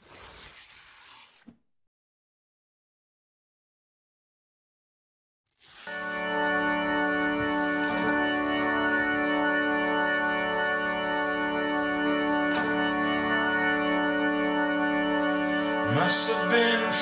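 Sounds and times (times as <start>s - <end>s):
held organ-like chord: 6.1s - 17.0s.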